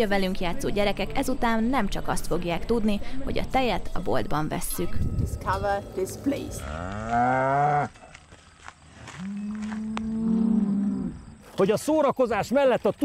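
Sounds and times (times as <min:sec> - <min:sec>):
cows mooing: 0:05.3 - 0:08.0, 0:09.1 - 0:11.3.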